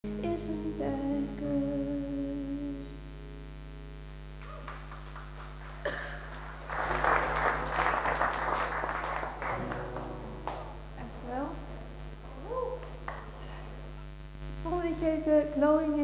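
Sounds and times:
audience applause: 4.4s - 10.9s, 12.8s - 13.4s.

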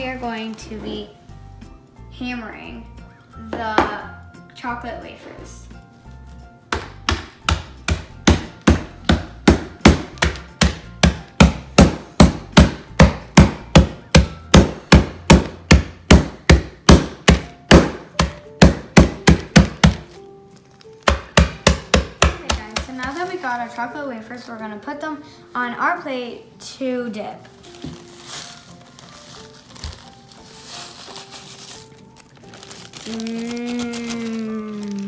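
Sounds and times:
mallet pounding bag on countertop: 6.7s - 20.2s, 21.0s - 23.5s.

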